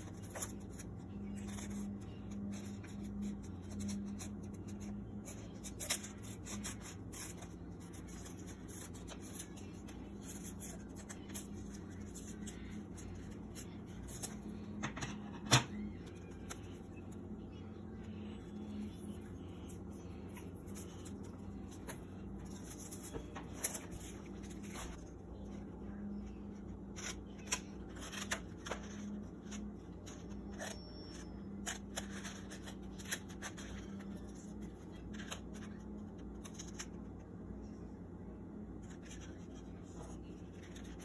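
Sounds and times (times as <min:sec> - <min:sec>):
scissors snipping paper: 0:00.0 - 0:14.5
paper rustle: 0:00.0 - 0:14.7, 0:18.1 - 0:25.5, 0:26.2 - 0:37.0, 0:38.8 - 0:41.0.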